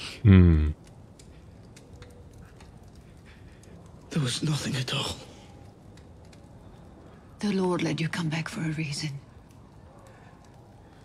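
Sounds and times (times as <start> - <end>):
faint soft clicks: 0.8 - 4.1, 5.6 - 6.9.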